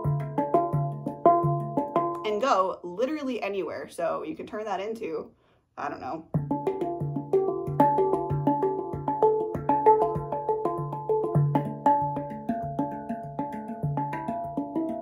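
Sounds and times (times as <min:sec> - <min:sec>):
handpan played by hand: 0:00.0 - 0:02.2, 0:06.3 - 0:15.0.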